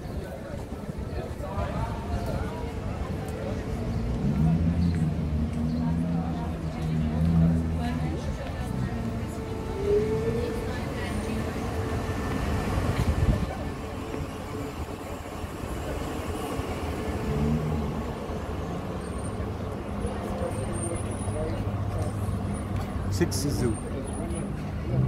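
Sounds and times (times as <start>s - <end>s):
passers-by talking: 0.0s - 25.0s
low vehicle rumble: 0.4s - 25.0s.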